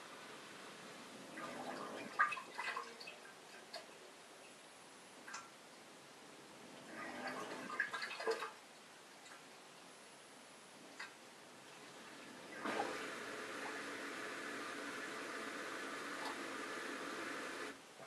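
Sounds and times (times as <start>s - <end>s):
water gurgling: 0.6s - 5.6s, 6.5s - 10.0s, 10.9s - 17.8s
dishwasher drain pump running: 11.8s - 17.8s.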